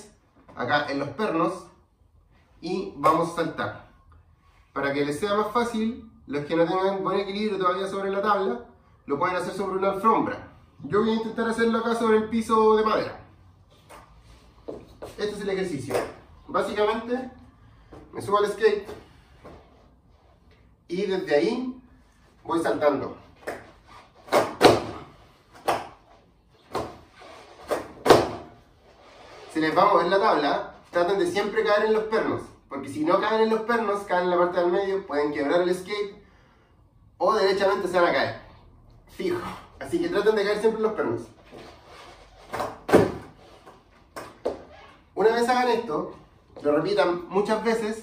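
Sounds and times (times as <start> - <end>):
skateboard landing on wooden floor: 24.3 - 25.0, 27.6 - 28.5, 42.5 - 43.4.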